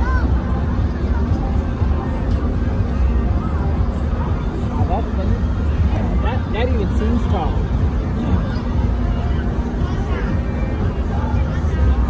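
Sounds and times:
distant indistinct voices: 0.0s - 12.0s
faint constant hum: 0.0s - 12.0s.

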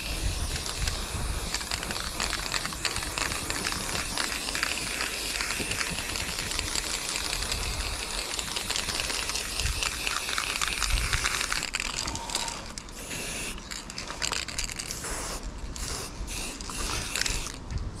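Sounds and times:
spray can hissing: 0.0s - 17.6s.

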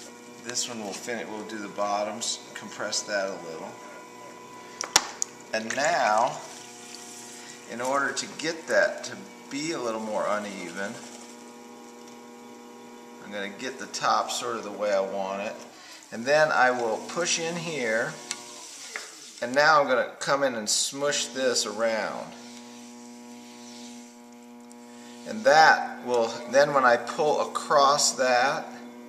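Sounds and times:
potter's wheel motor humming: 0.0s - 29.0s.

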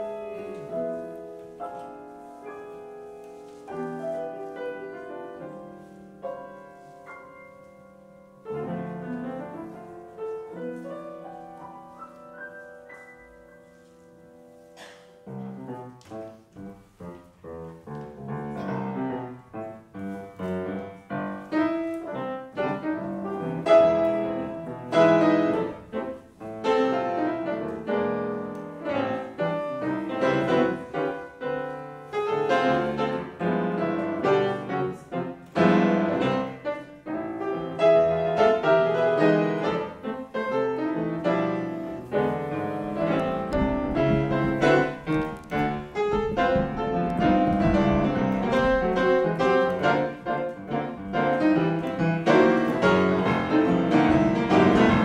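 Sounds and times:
solo grand piano: 0.0s - 55.0s.

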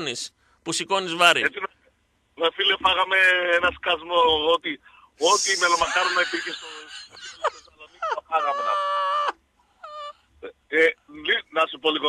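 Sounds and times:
person wailing: 5.2s - 10.1s.

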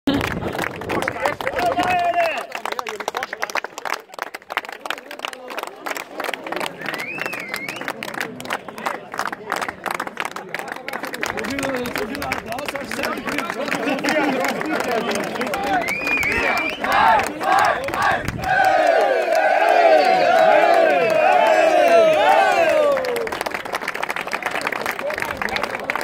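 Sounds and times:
group clapping: 0.1s - 26.0s.

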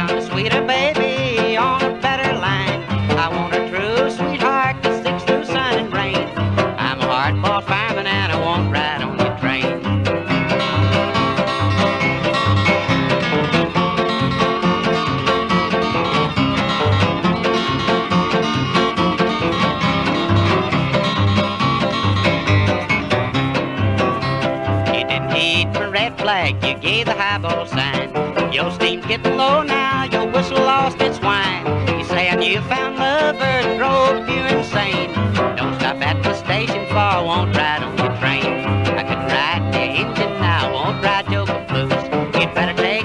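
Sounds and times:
country band instrumental: 0.0s - 43.0s.

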